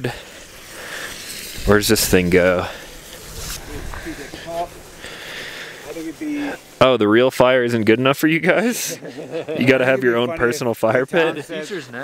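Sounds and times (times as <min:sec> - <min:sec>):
faint outdoor room noise: 0:00.0 - 0:12.0
man talking close by: 0:01.6 - 0:02.9, 0:03.6 - 0:04.8, 0:05.8 - 0:12.0.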